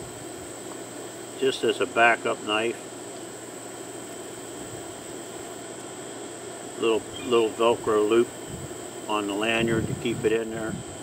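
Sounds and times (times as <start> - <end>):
insect drone: 0.0 - 11.0
low even hum: 0.0 - 11.0
man talking: 1.4 - 2.8, 6.8 - 8.3, 9.1 - 10.8.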